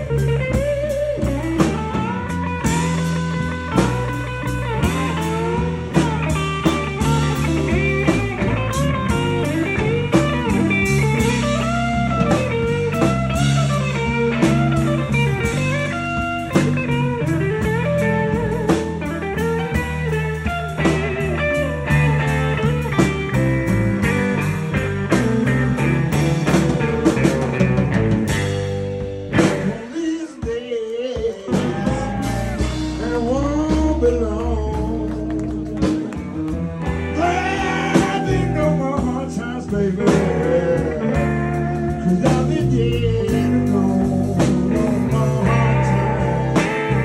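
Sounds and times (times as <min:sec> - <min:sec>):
electric guitar solo with string bends: 0:00.0 - 0:29.9, 0:35.5 - 0:47.0
bass guitar: 0:00.0 - 0:47.0
drums: 0:00.0 - 0:47.0.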